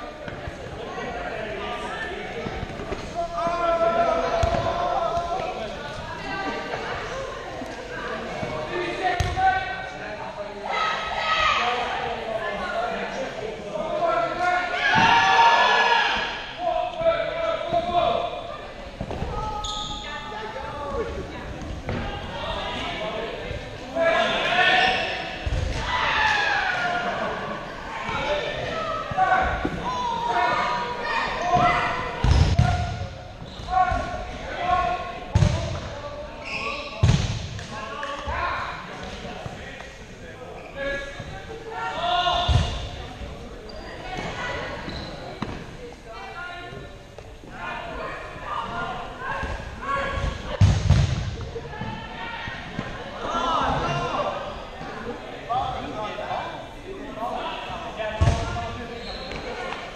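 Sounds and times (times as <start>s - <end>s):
players' voices: 0.0s - 59.9s.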